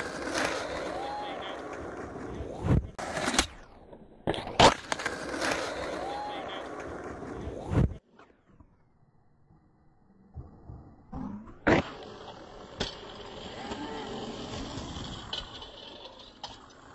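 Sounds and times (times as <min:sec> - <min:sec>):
skateboard wheels rolling: 0:00.0 - 0:08.8, 0:10.2 - 0:16.9.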